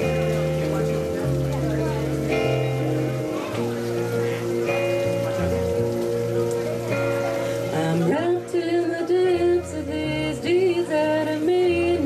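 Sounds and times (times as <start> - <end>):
acoustic guitar chords: 0.0 - 12.0
electric bass notes: 0.0 - 12.0.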